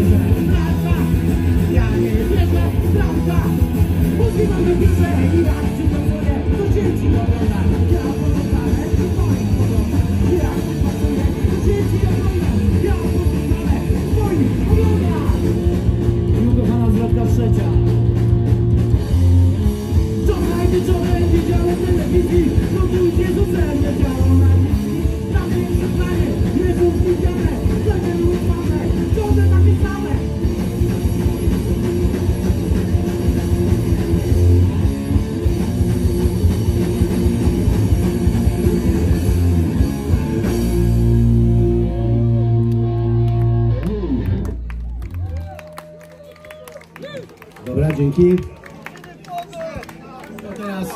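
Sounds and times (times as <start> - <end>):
distorted electric guitars: 0.0 - 46.2
punk rock band playing live: 0.0 - 47.6
drums: 0.0 - 48.2.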